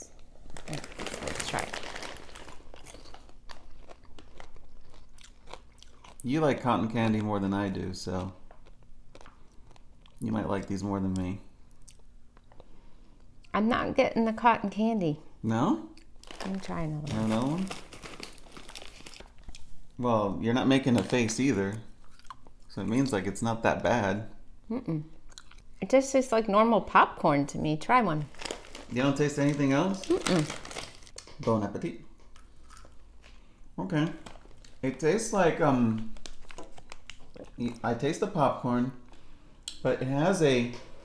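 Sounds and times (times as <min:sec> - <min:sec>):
plastic bag crinkling: 0:00.1 - 0:05.7, 0:16.2 - 0:19.5, 0:20.7 - 0:21.6, 0:28.2 - 0:31.3, 0:34.0 - 0:37.8
chewing crunchy popcorn: 0:00.1 - 0:13.5, 0:15.9 - 0:19.7, 0:20.8 - 0:23.0, 0:25.3 - 0:25.8, 0:32.3 - 0:34.9, 0:35.8 - 0:38.0.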